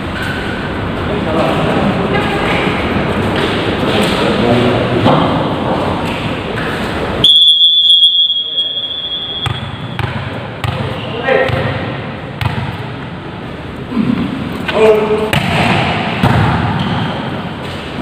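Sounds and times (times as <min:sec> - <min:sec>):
players' voices: 0:00.5 - 0:07.3, 0:08.1 - 0:16.2
referee's whistle blast: 0:07.2 - 0:10.0
volleyball being hit: 0:09.0 - 0:12.9, 0:15.3 - 0:17.2.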